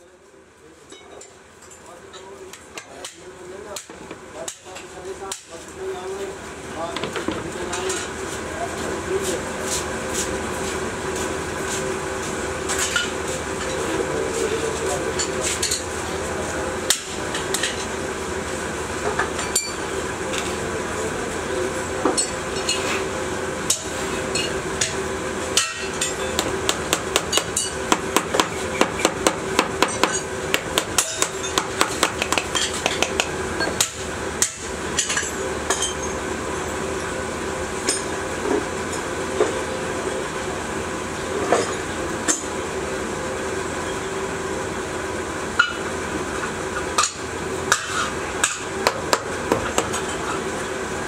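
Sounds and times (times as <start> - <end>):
steady hum: 2.0 - 51.0.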